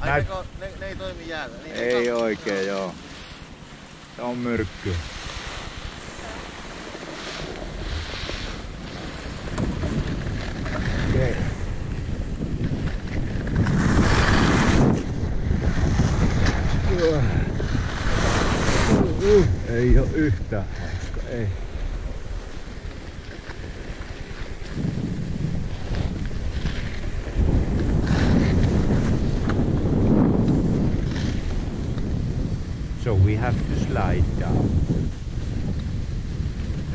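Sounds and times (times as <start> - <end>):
skis scraping over icy slope: 0.0 - 36.9
wind buffeting microphone: 0.0 - 36.9.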